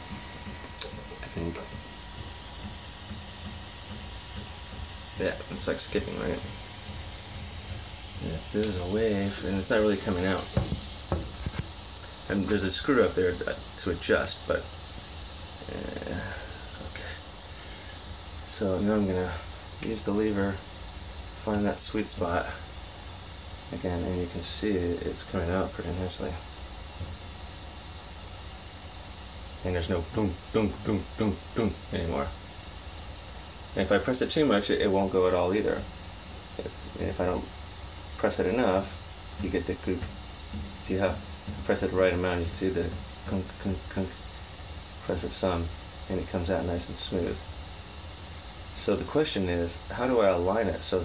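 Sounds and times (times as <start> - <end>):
fan hiss: 0.0 - 51.0
printer low hum: 0.0 - 51.0.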